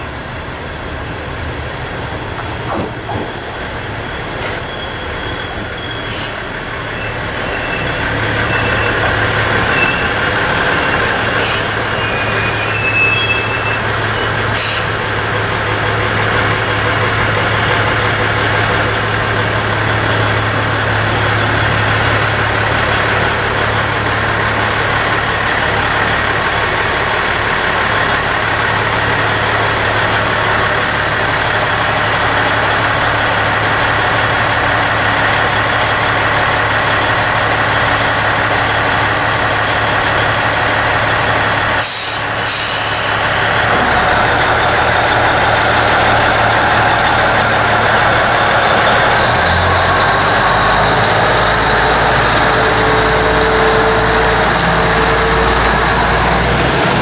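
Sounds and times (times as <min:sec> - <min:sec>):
diesel engine idling: 0:08.0 - 0:11.9, 0:14.4 - 0:57.0.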